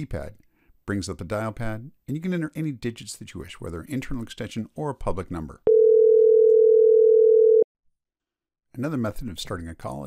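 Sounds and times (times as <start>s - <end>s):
telephone ringback tone: 5.7s - 7.6s.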